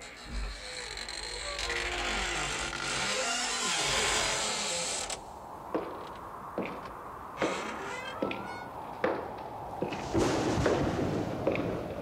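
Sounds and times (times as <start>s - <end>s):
door creaking open: 0.0s - 5.2s, 7.4s - 8.8s
footstep: 5.7s - 10.2s.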